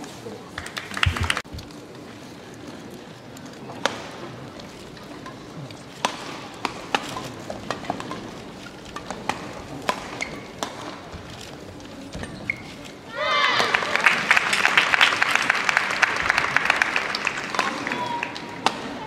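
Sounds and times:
rackets hitting shuttlecock: 6.0s - 8.3s, 8.9s - 11.2s, 17.5s - 19.0s
shoes squeaking on court: 10.0s - 13.1s.

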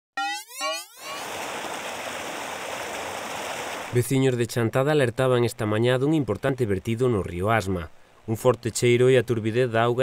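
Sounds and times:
two rising tones: 0.2s - 1.8s
water pouring from pipe into river: 1.2s - 4.0s.

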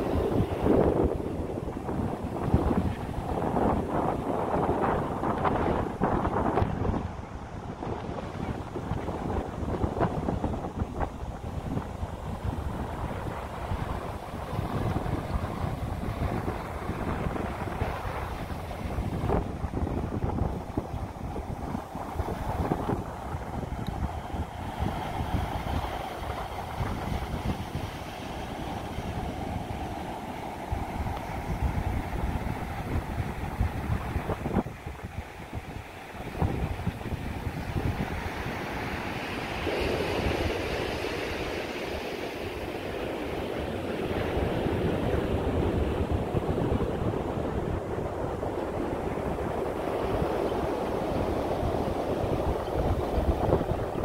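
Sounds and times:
ocean surf breaking: 0.0s - 54.0s
wind buffeting microphone: 0.0s - 54.0s.

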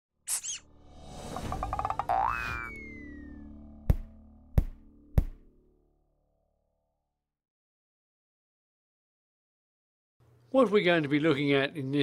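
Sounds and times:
long falling tone: 1.2s - 6.2s
cartoon boing: 1.5s - 3.3s.

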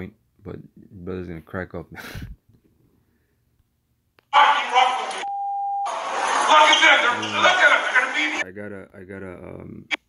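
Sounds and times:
voices: 4.3s - 5.3s, 6.2s - 8.4s
censor bleep: 5.2s - 6.0s.

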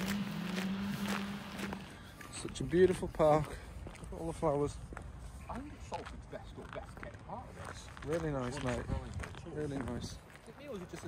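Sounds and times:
footsteps on paved path: 0.0s - 11.0s.

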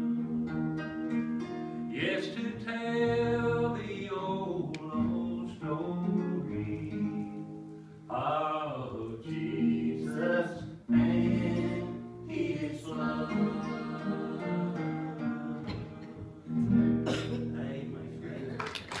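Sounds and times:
guitar chords and notes: 0.0s - 8.1s, 9.3s - 18.4s.

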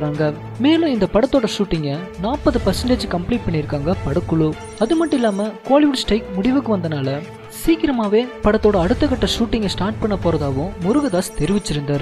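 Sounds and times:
background music: 0.0s - 12.0s
man narrating: 0.0s - 12.0s.

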